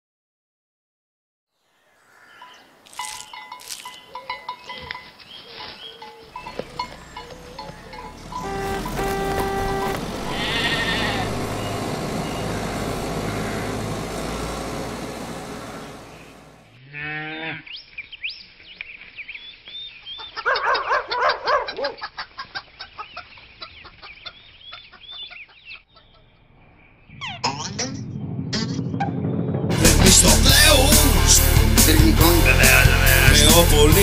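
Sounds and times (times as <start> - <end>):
short tones and chirps: 7.6 - 11.9
cartoon sheep bleating: 10.2 - 11.5, 32.4 - 33.6
rush of noise: 26.5 - 31.7.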